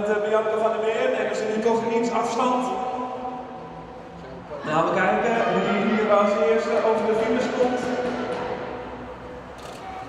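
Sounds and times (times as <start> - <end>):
low murmur of crowd: 0.0 - 10.0.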